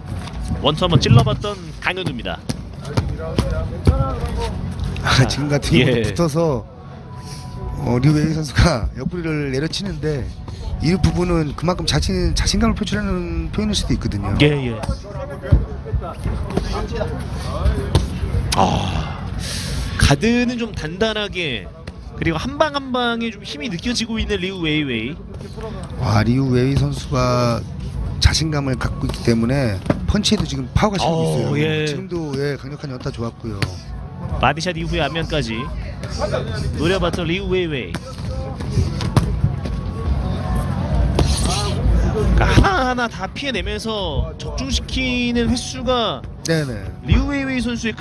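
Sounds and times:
voices around the ring: 0:00.0 - 0:48.0.

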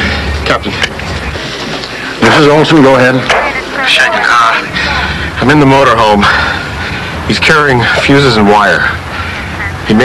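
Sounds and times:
voice on two-way radio: 0:09.5 - 0:10.0.

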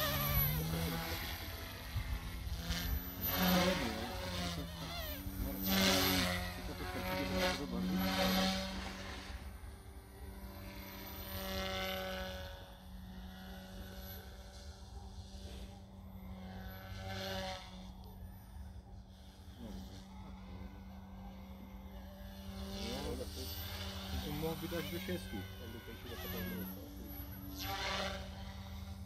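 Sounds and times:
model aircraft motor buzzing: 0:00.0 - 0:29.0.

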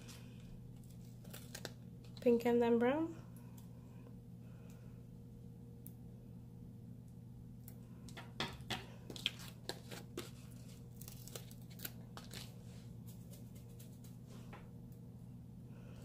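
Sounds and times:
steady low hum: 0:00.0 - 0:16.0
sticker sheet crinkling: 0:00.8 - 0:02.3, 0:09.1 - 0:12.5.

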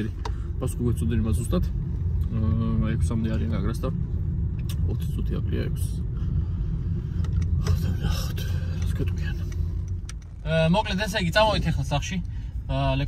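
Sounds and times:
car cabin rumble: 0:00.0 - 0:13.0
man talking: 0:10.4 - 0:13.0.

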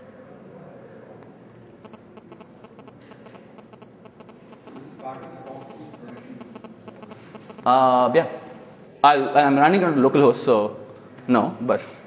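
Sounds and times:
room hum: 0:00.0 - 0:11.1
typing on laptop keyboard: 0:01.8 - 0:07.7.

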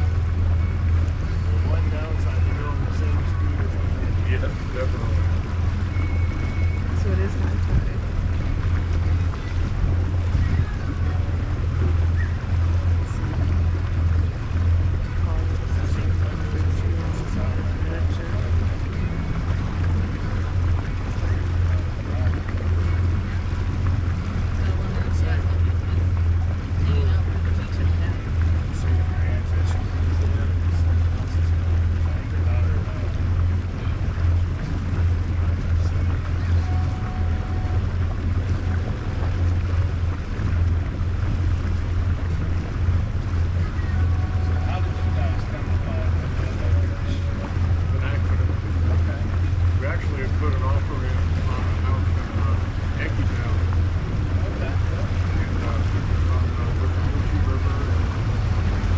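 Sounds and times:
motorboat engine droning: 0:00.0 - 0:58.9
wind buffeting microphone: 0:00.0 - 0:58.9.

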